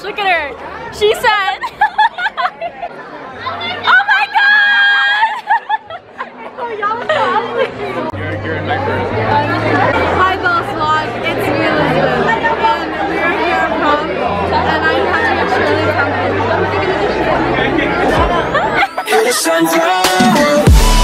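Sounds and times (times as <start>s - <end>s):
crowd chattering: 0.0s - 21.0s
music with deep bass line: 20.1s - 21.0s.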